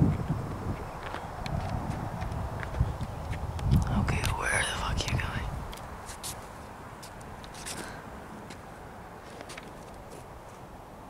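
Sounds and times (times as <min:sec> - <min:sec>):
wind noise on microphone: 0:00.0 - 0:06.5.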